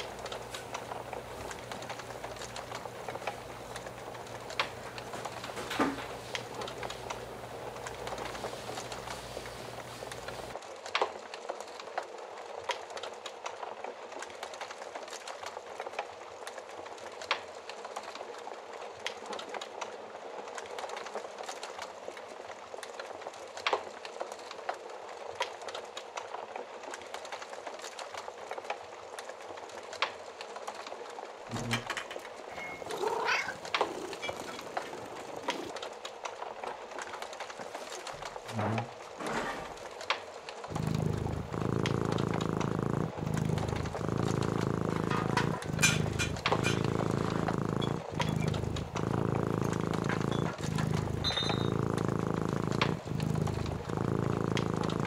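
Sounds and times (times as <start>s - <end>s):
fire crackling and popping: 0.0s - 55.0s
animal call: 31.5s - 35.7s.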